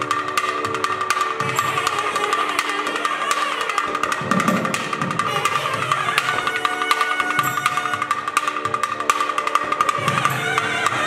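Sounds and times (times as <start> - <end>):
barrel drums played fast: 3.6 - 10.8.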